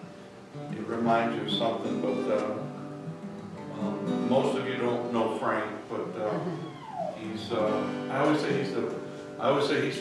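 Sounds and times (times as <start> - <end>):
acoustic guitar chords: 0.0 - 10.0.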